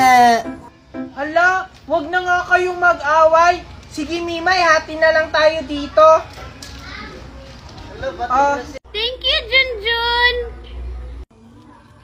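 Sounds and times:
faint children's voices: 5.2s - 12.0s.

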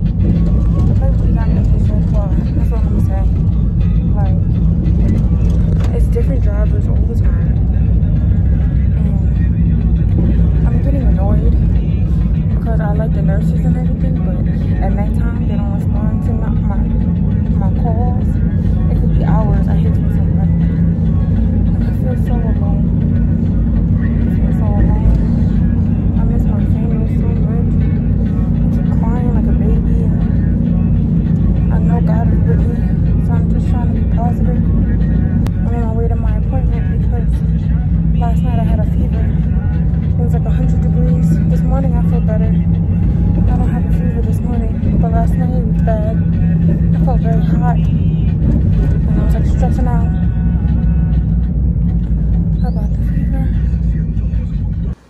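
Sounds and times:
indistinct voices talking: 0.0s - 51.3s, 52.3s - 55.0s
car engine and road rumble: 0.0s - 55.0s.

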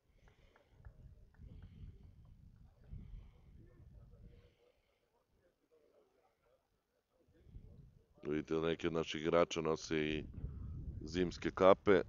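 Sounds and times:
faint distant voices: 0.0s - 12.0s
wind rumble on microphone: 0.8s - 4.4s, 7.4s - 8.0s, 10.1s - 11.6s.

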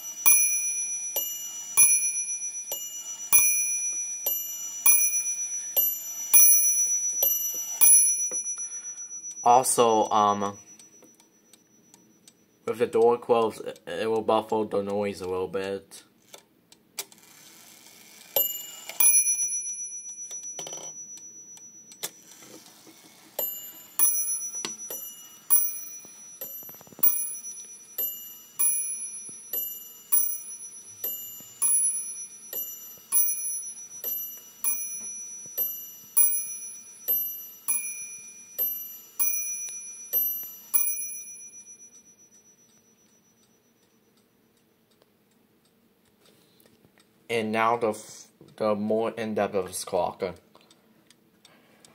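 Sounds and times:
clock bells striking: 0.0s - 12.8s, 18.4s - 22.4s, 23.3s - 44.1s.

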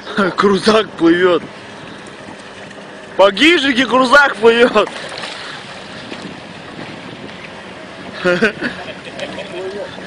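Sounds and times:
flowing river water: 0.0s - 10.0s
wind buffeting microphone: 0.5s - 10.0s.

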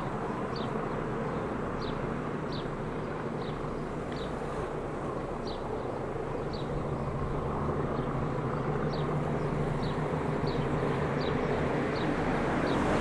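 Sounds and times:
diesel locomotive engines droning: 0.0s - 13.0s.

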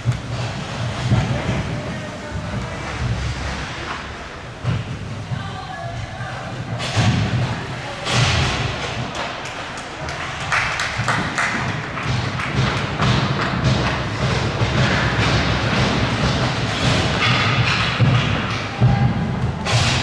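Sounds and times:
indistinct voices: 0.0s - 20.0s
knocks and thumps: 0.0s - 20.0s.

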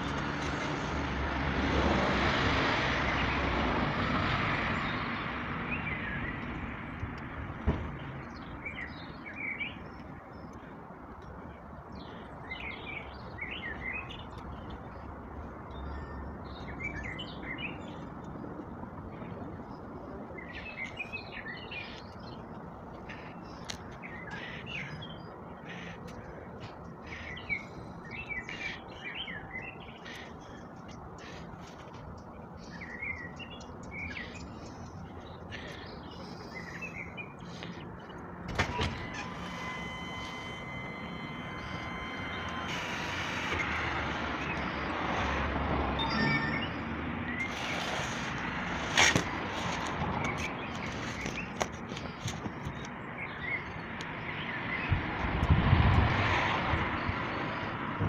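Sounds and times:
small birds chirping: 7.9s - 45.0s
construction site rumble: 37.4s - 45.6s
high mechanical whine: 38.4s - 45.6s.

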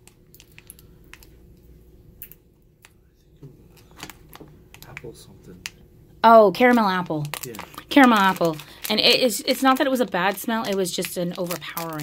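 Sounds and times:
plastic wrapper crinkling: 0.0s - 1.6s, 3.7s - 5.8s, 6.6s - 12.0s.

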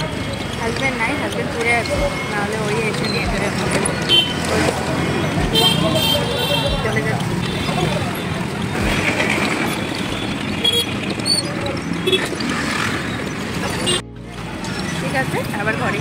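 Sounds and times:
people talking: 0.0s - 12.4s, 14.9s - 16.0s
cars and motorbikes passing: 0.0s - 16.0s.

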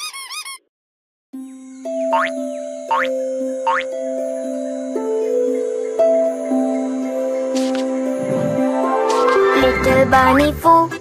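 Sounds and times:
background music with held notes: 1.4s - 11.0s
rising cartoon boing effects: 3.7s - 3.9s.

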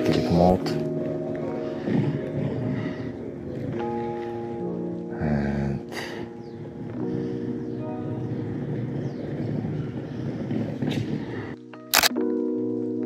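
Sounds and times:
street ambience: 0.0s - 12.9s
background music with held chords: 0.0s - 13.0s
camera shutter double click: 11.9s - 12.2s.

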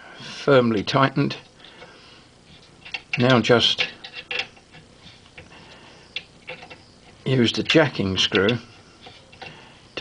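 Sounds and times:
allen key clicking on metal screw: 2.8s - 5.5s, 6.2s - 7.2s.

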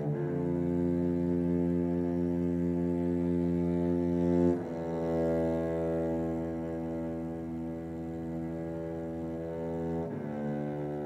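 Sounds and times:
cello bowed low note: 0.0s - 11.0s.

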